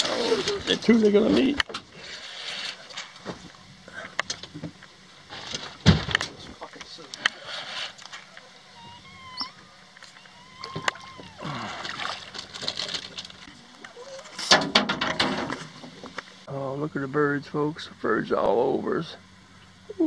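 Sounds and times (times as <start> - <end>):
high bird calls: 8.3 - 12.0.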